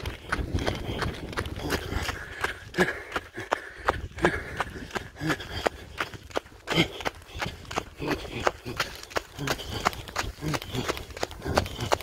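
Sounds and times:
running footsteps on dirt: 0.0 - 12.0.

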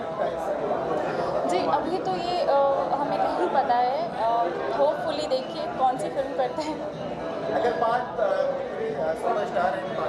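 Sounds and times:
chatter of people: 0.0 - 10.0.

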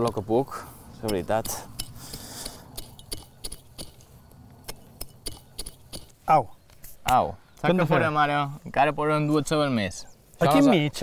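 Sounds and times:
crackles of dry soil and twigs: 0.0 - 11.0.

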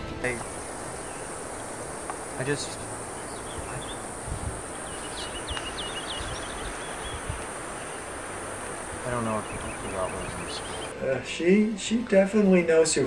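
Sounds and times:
bird chirping: 0.0 - 11.4
steady hiss: 0.0 - 13.0.

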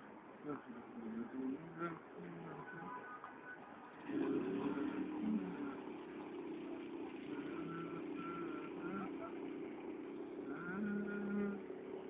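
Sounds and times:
distant voices: 0.0 - 12.0
road traffic engines: 0.0 - 12.0.

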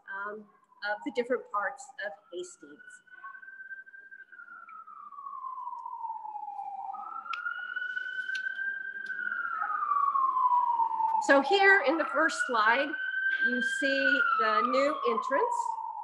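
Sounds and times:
emergency vehicle siren wailing: 0.0 - 16.0.

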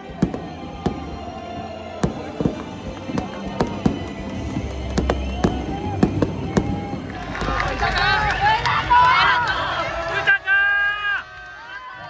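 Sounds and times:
fireworks bangs: 0.0 - 9.7
singing voices and music: 0.0 - 10.4.

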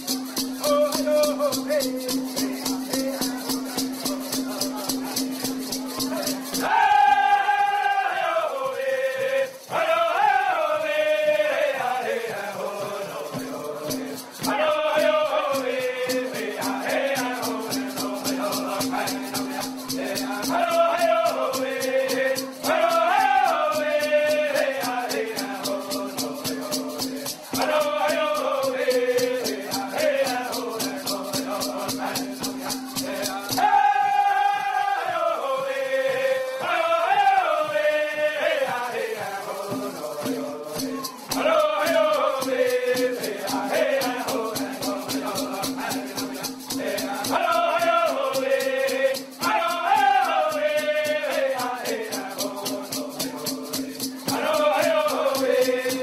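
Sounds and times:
horn rattles shaking: 0.0 - 11.4, 12.0 - 56.0
men singing in unison: 0.0 - 56.0.

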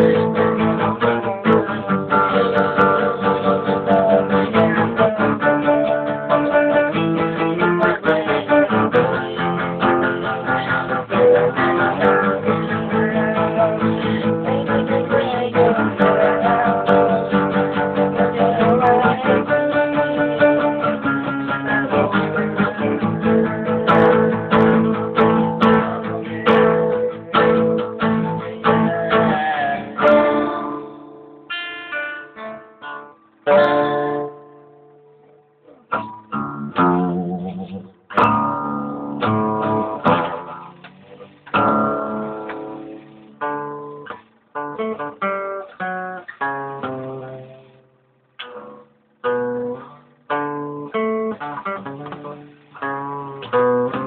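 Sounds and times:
acoustic guitar: 0.0 - 54.0.

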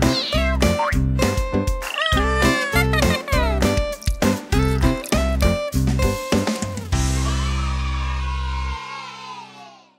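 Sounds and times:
bouncy children's music: 0.0 - 7.8
cartoon kitten meowing: 1.8 - 3.6.

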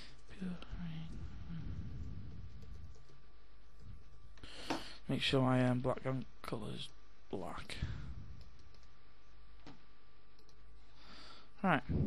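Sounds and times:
steady low hum: 0.0 - 12.0
computer mouse clicks: 8.4 - 9.0, 9.6 - 10.6.

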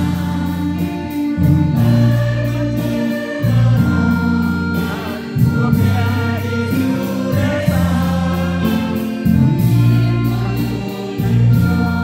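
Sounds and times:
choir singing a hymn: 0.0 - 12.0
low bass accompaniment: 0.0 - 12.0.

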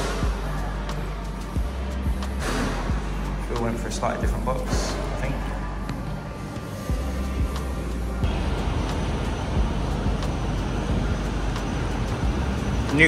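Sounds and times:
road traffic rushing: 6.9 - 13.0.

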